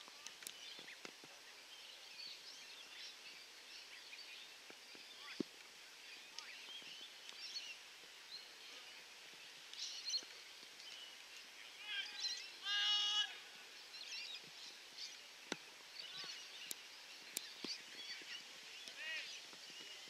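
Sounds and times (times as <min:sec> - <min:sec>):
birds chirping: 0:00.0 - 0:20.0.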